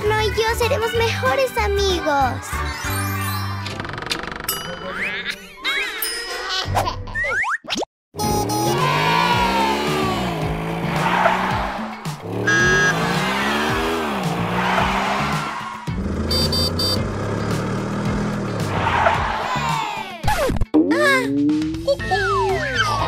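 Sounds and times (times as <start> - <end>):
short electronic beep: 16.3 - 17.0.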